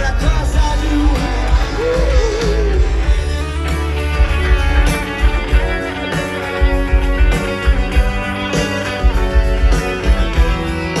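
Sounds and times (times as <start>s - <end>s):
bass guitar: 0.0s - 11.0s
electric guitars: 0.0s - 11.0s
steady drum beat: 0.0s - 11.0s.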